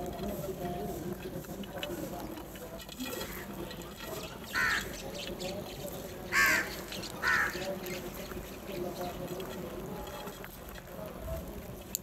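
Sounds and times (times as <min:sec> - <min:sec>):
crows cawing: 0:04.4 - 0:05.0, 0:06.2 - 0:07.8.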